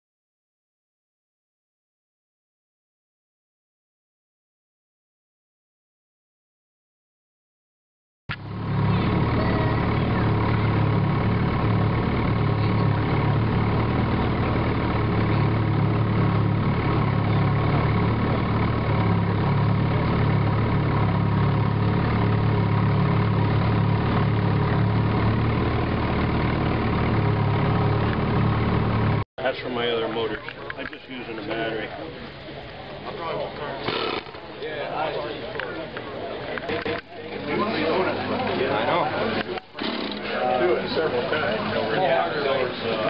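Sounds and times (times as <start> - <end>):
outboard motor running: 8.3 - 43.0.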